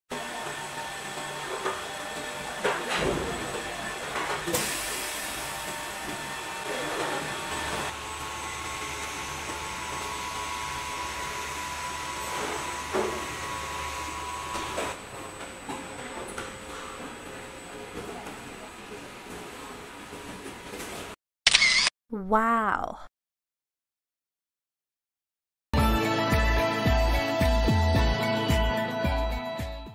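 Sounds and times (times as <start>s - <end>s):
printer motors whining: 0.2s - 15.0s.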